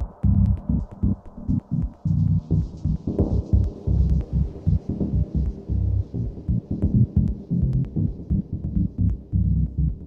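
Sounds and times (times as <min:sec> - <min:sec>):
heavy pulsing bass beat: 0:00.0 - 0:10.0.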